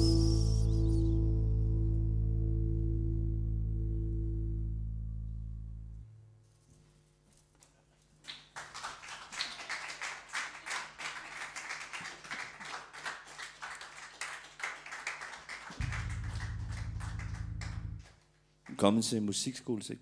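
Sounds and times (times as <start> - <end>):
low steady hum: 0.0 - 8.1, 15.8 - 19.6
small audience clapping: 7.7 - 19.0.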